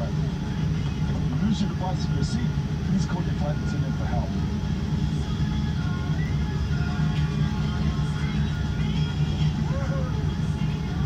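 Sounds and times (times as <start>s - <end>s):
airplane cabin rumble: 0.0s - 11.0s
faint music over speakers: 0.0s - 11.0s
voices over cabin speakers: 0.0s - 11.0s.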